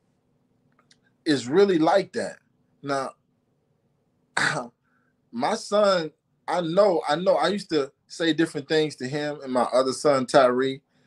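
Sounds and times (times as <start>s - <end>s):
person clearing throat: 4.4s - 4.7s.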